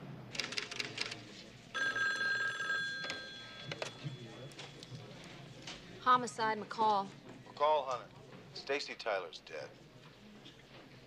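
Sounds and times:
telephone bell ringing: 1.8 - 4.6.

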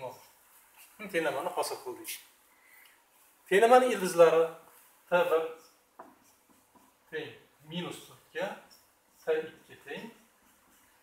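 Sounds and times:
marker strokes on whiteboard: 0.0 - 2.4, 3.0 - 11.0
marker tapping whiteboard: 6.0 - 7.0.

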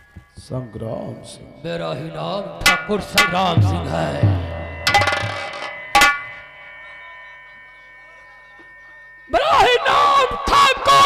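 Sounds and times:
sharp metallic strike ringing: 0.7 - 11.0.

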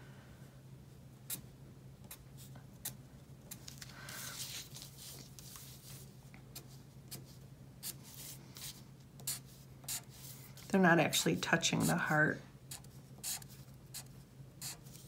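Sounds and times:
low steady hum: 0.0 - 15.0
marker scratching on paper: 7.1 - 10.4, 12.7 - 15.0.

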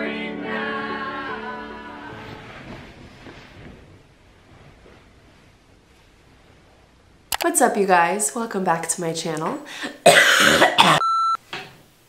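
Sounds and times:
woman coughing: 9.8 - 11.1.

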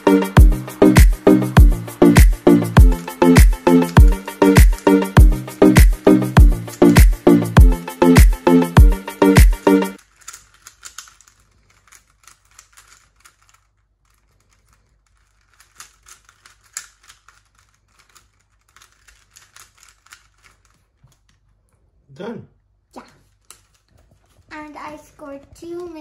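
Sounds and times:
puzzle cube layers clicking: 2.0 - 5.1, 10.0 - 21.3.

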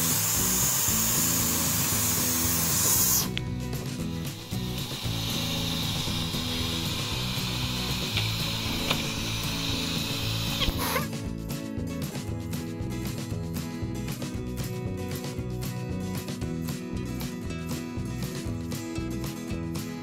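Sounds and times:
vacuum cleaner running: 0.0 - 11.1
background music: 0.0 - 20.0.

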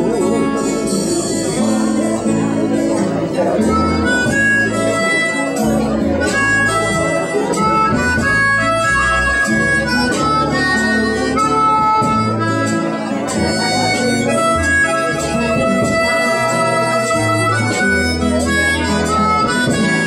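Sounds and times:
guitar accompaniment: 0.0 - 20.0
harmonica playing held notes: 0.0 - 20.0
low bass notes: 0.0 - 20.0.

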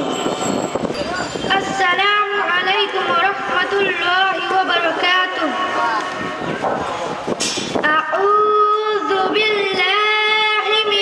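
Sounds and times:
girl chanting recitation: 1.5 - 6.1, 7.8 - 11.0.

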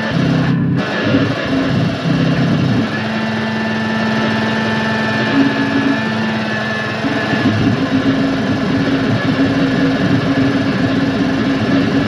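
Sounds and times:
distorted low drone: 0.0 - 12.0
thin high whine: 0.0 - 12.0.

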